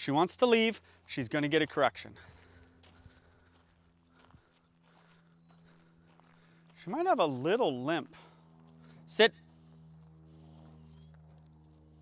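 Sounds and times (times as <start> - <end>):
low steady hum: 0.0 - 12.0
faint footsteps on gravel: 0.2 - 12.0.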